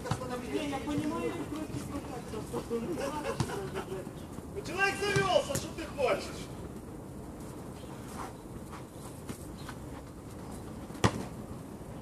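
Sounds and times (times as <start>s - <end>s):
ball being kicked: 0.0s - 1.8s, 11.0s - 11.4s
players calling out: 0.0s - 6.5s.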